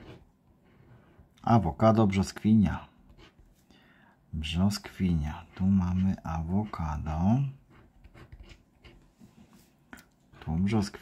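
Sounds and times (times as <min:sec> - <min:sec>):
scraper scratching a scratch card: 0:07.5 - 0:09.0.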